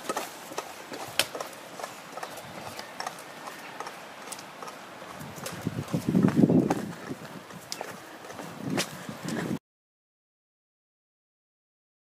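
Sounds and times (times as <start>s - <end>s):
footsteps on wet stony track: 0.0s - 9.6s.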